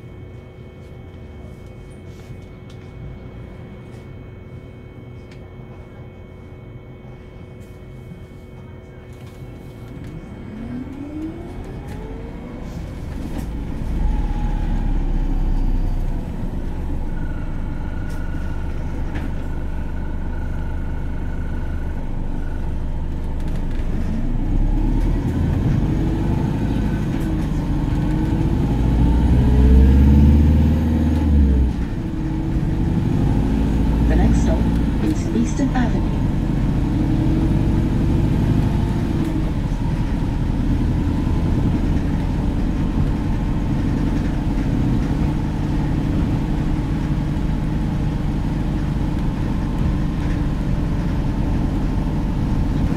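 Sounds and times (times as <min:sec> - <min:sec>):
bus drive whine: 0:00.0 - 0:52.9
low diesel rumble: 0:00.0 - 0:52.9.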